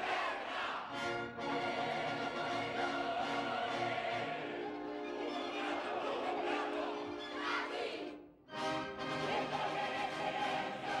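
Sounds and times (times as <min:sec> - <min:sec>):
opera chorus singing: 0:00.0 - 0:11.0.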